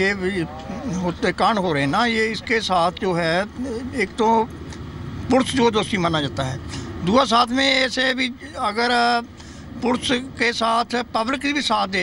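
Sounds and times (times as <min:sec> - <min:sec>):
man speaking: 0:00.0 - 0:04.5, 0:05.2 - 0:12.0.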